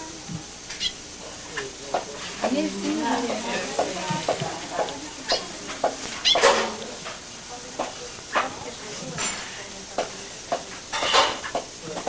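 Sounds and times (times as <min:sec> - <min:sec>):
indistinct background voices: 0:01.2 - 0:12.0.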